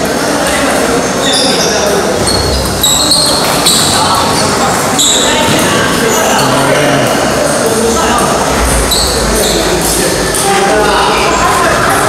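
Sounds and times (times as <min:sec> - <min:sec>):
voices in echoing hall: 0:00.0 - 0:12.0.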